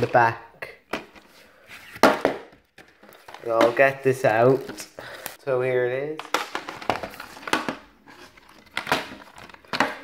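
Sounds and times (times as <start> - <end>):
plastic case scrape and click: 6.3 - 10.0.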